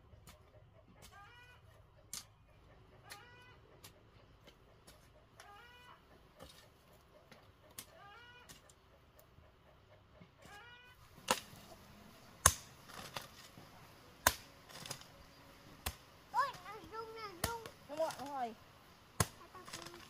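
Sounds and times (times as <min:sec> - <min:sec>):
hoe chopping dry soil: 0:10.4 - 0:20.0.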